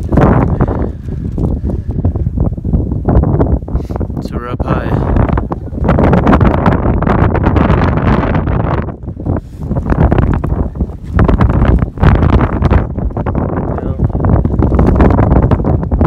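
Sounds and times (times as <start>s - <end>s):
strong wind buffeting microphone: 0.0s - 16.0s.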